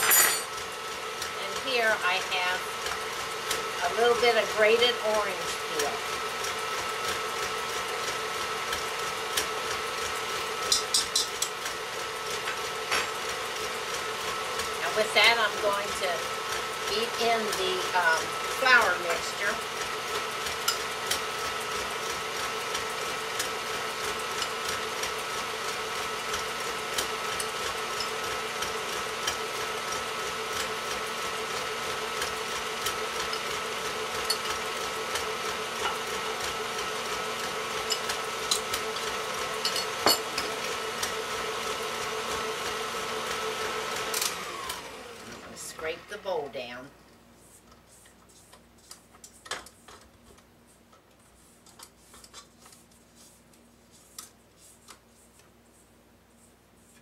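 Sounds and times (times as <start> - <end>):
stand mixer motor whining: 0.5 - 46.1.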